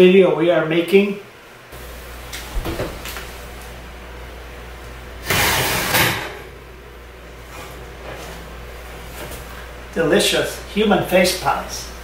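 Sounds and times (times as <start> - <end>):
metal oven rack scraping: 5.2 - 6.5.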